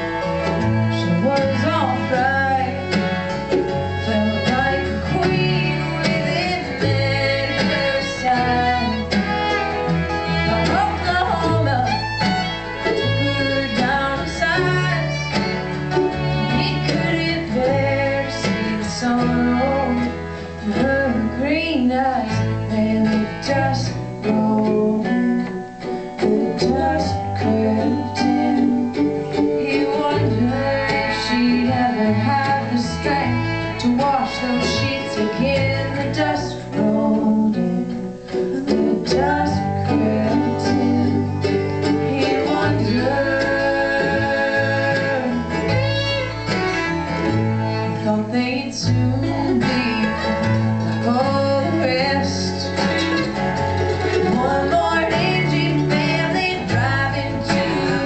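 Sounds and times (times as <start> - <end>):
bass guitar: 0.0 - 58.0
bluegrass string band: 0.0 - 58.0
fiddle: 0.0 - 58.0
strummed acoustic guitar: 0.0 - 58.0.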